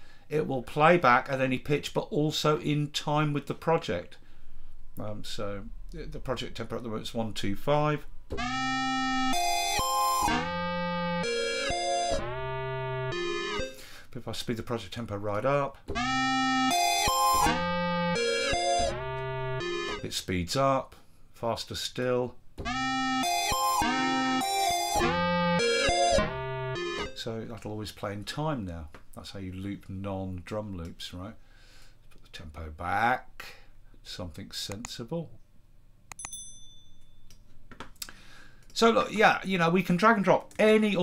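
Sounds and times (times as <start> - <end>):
synth loop of held notes: 8.3 - 13.8, 15.9 - 20.1, 22.6 - 27.3
bright bell ding: 36.2 - 37.3.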